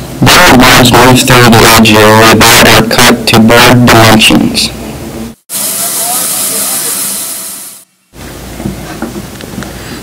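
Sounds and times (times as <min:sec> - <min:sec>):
board edger saw hissing: 0:05.5 - 0:07.8.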